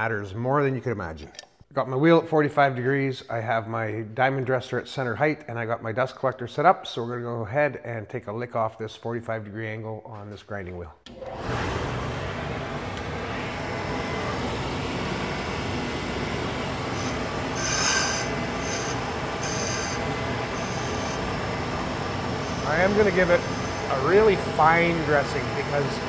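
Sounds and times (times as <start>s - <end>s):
dust collector running: 11.1s - 26.0s
grinder spindle running: 11.1s - 26.0s
high-pitched hissing bursts: 16.9s - 21.2s, 22.4s - 24.0s.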